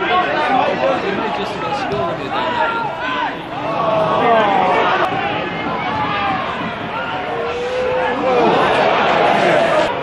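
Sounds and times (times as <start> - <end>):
crowd chatter: 0.0 - 10.0
drawn-out shout: 2.4 - 10.0.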